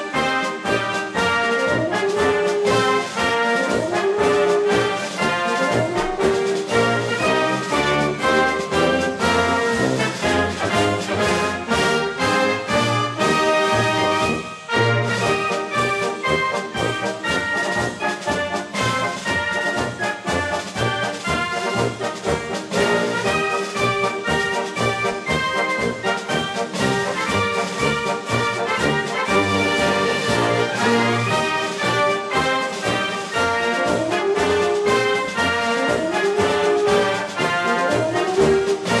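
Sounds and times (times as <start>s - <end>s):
brass band playing a march: 0.0s - 39.0s.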